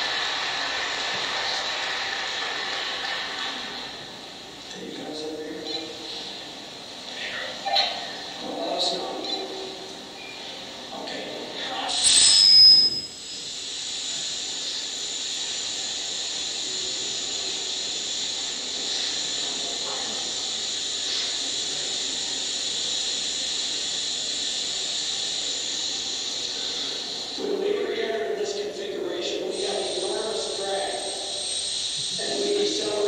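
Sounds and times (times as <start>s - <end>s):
high-pitched hiss: 11.7s - 33.0s
loud high squeal: 11.9s - 18.0s, 29.5s - 33.0s.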